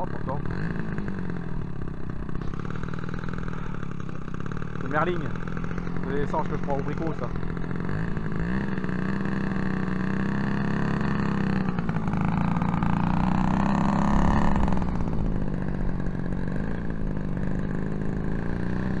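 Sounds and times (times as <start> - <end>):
model aircraft engine idling: 0.0 - 19.0.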